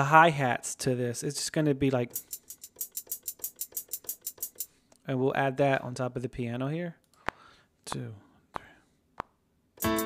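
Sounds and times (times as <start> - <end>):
hi-hat ticks: 2.0 - 4.8, 9.8 - 10.0.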